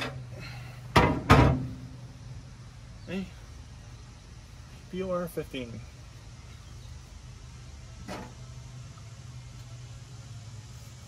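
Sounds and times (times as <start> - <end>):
steady low hum: 0.0 - 11.0
loud sharp knocks: 1.0 - 1.7.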